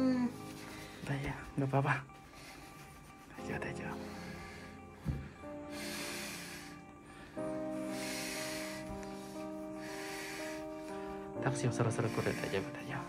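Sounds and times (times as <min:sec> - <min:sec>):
woman breathing heavily: 0:00.0 - 0:01.1, 0:03.9 - 0:13.0
soft background music: 0:00.0 - 0:13.0.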